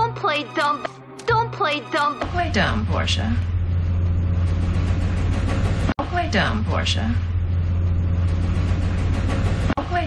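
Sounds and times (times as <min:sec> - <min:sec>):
steady low hum: 0:02.2 - 0:10.0.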